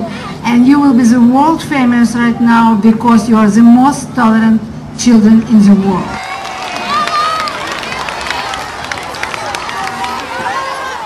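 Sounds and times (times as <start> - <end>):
crowd of children talking: 5.6 - 11.0.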